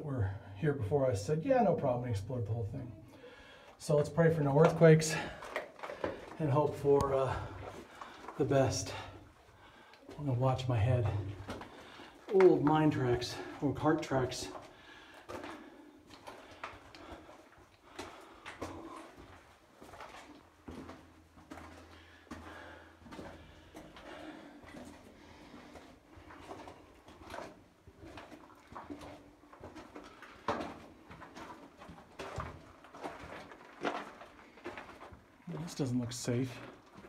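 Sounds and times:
person breathing: 0:03.0 - 0:03.8, 0:07.3 - 0:10.2, 0:11.6 - 0:12.3, 0:14.7 - 0:19.2, 0:21.8 - 0:25.9
footsteps on gravel: 0:04.4 - 0:09.3, 0:10.1 - 0:37.0.

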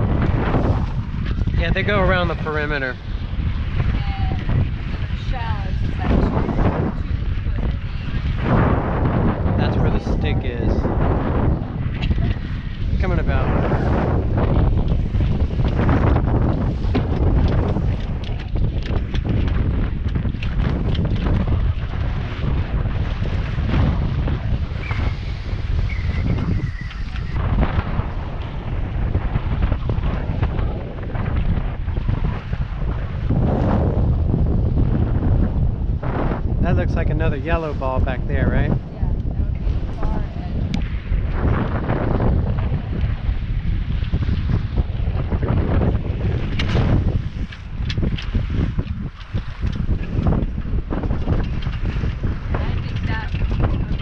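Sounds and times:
water splashing along boat hull: 0:00.0 - 0:10.5, 0:11.2 - 0:36.6, 0:38.7 - 0:54.0
wind buffeting microphone: 0:00.0 - 0:54.0.

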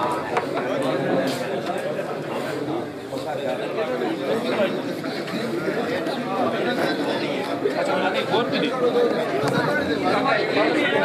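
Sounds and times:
men chattering: 0:00.0 - 0:11.0.

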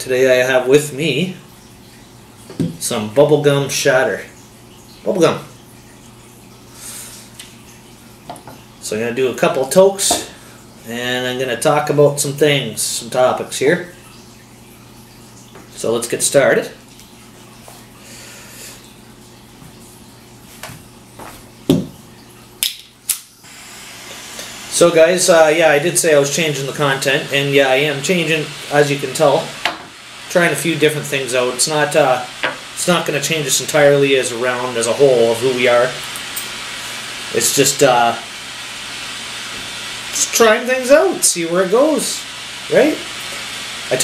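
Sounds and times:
torch flame hissing: 0:23.4 - 0:44.0.

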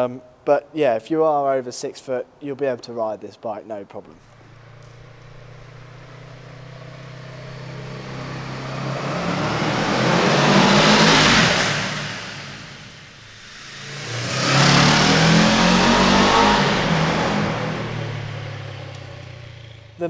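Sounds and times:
motorcycle passing in tunnel: 0:04.2 - 0:20.0.

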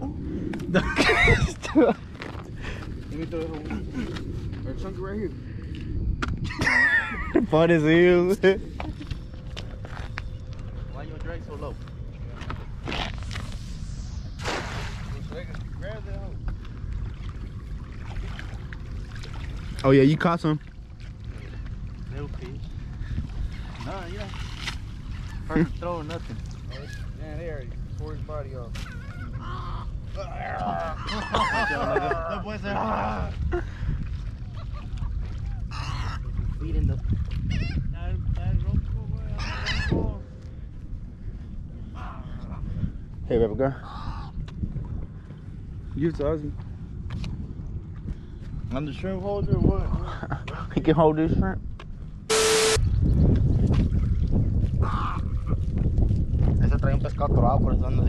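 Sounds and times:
wind rumbling on microphone: 0:00.0 - 0:58.0
net swishing through air: 0:12.8 - 0:15.4
gulls calling: 0:28.7 - 0:33.0, 0:34.5 - 0:36.4, 0:39.3 - 0:40.4.

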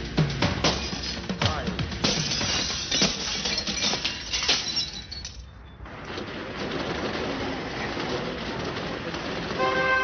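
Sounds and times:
glass smashing: 0:00.6 - 0:01.3, 0:02.0 - 0:05.5.

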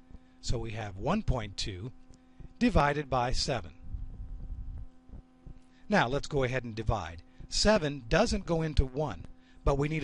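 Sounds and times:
electrical hum: 0:00.0 - 0:10.0
low uneven rumble: 0:03.4 - 0:05.7.

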